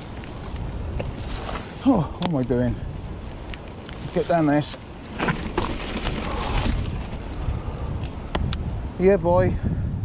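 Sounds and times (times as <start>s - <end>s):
bike tyres rumbling over dirt: 0.0s - 9.4s.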